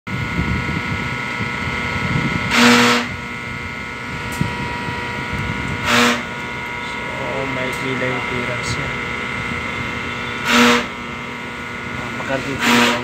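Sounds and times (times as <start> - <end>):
steady hum with high whine: 0.1 - 13.0.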